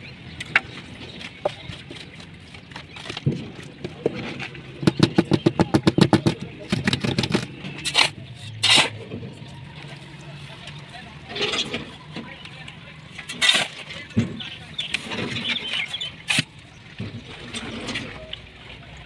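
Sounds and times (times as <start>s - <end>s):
fast knocks: 4.8s - 7.5s
shovel scraping sand and cement: 7.0s - 9.2s, 13.3s - 14.1s, 14.8s - 16.5s.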